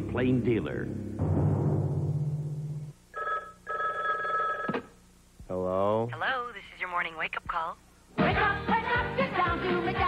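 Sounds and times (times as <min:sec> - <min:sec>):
telephone ringing: 0:03.1 - 0:05.0.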